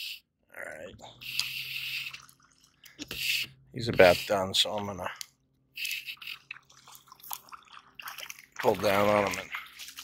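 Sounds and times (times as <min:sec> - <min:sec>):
fish splashing water: 0:01.2 - 0:03.4, 0:05.8 - 0:10.0.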